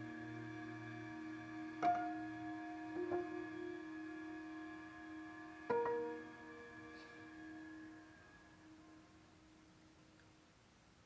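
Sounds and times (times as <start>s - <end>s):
soft sustained orchestral notes: 0.0s - 10.5s
sharp plucked-string notes: 1.8s - 4.0s.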